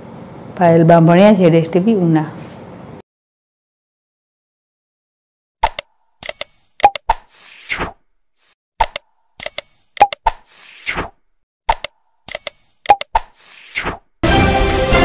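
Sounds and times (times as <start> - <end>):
mouse clicks: 5.6 - 7.3, 8.8 - 10.4, 11.7 - 13.4.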